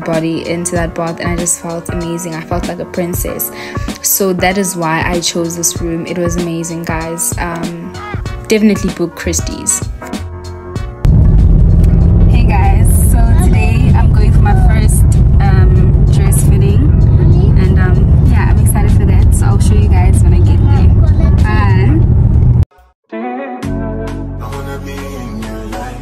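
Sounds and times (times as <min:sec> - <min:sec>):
woman talking: 0:00.0 - 0:09.9, 0:12.3 - 0:22.0
road and engine rumble: 0:11.1 - 0:22.7.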